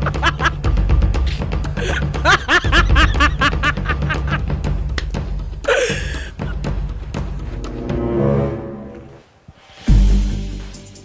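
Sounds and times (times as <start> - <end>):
person laughing: 0.0 - 0.6, 1.3 - 4.5, 5.6 - 6.6
low background music: 0.0 - 11.0.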